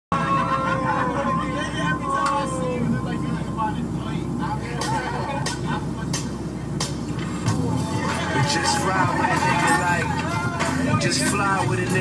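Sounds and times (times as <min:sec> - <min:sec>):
low steady bass: 0:00.1 - 0:12.0
voices over hip-hop beat: 0:00.2 - 0:12.0.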